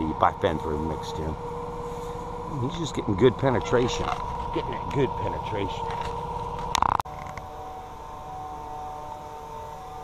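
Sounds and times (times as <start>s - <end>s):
sprayer pump motor humming: 0.0s - 10.0s.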